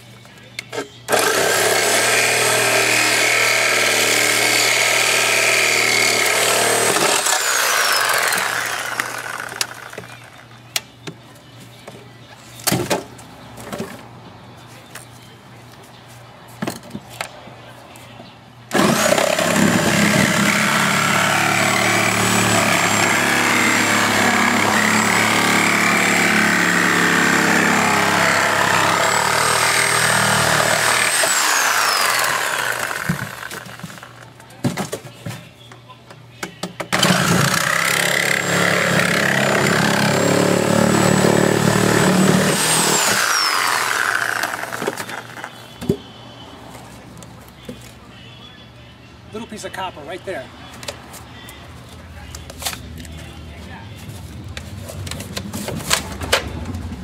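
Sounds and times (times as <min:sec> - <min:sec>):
power tool whining: 0:00.7 - 0:10.4, 0:18.7 - 0:34.2, 0:37.0 - 0:45.5.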